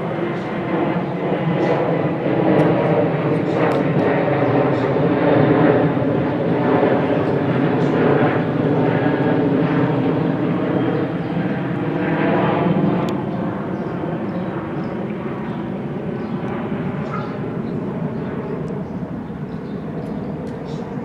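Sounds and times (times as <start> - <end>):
loud engine drone: 12.6 - 21.0.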